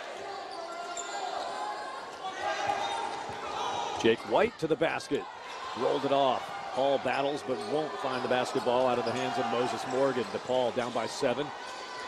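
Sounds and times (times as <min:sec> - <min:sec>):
murmur of crowd voices: 0:00.0 - 0:12.0.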